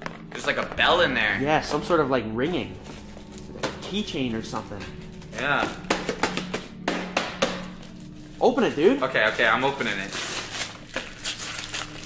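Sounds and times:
bell-like ringing: 0.0 - 10.4.

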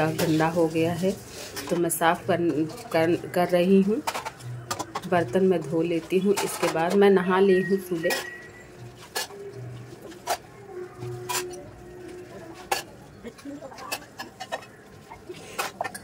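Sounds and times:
utensils clinking in sink: 0.0 - 16.0.

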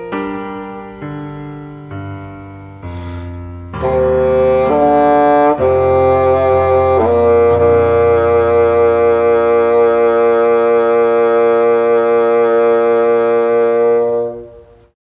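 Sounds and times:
bassoon long note: 2.8 - 15.0.

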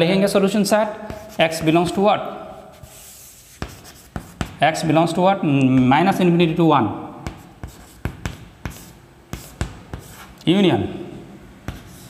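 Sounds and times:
chalk scratching on chalkboard: 1.0 - 2.0, 2.6 - 4.6, 7.2 - 10.4, 11.7 - 12.0
chalk tapping on board: 1.0 - 2.0, 2.8 - 4.6, 7.2 - 10.4, 11.6 - 12.0.

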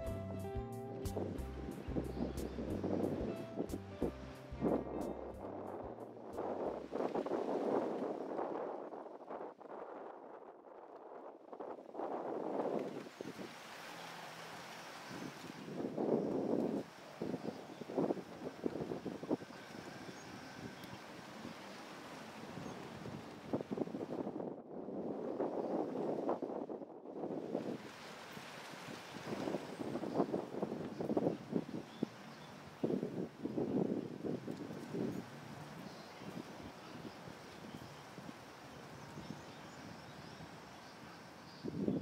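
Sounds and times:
wind buffeting microphone: 0.0 - 13.6, 15.1 - 21.8, 22.4 - 42.0.

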